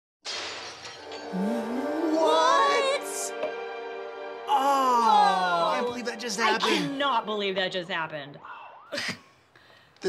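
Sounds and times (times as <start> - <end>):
glass breaking crash: 0.2 - 1.4
dramatic music chord: 1.1 - 7.7.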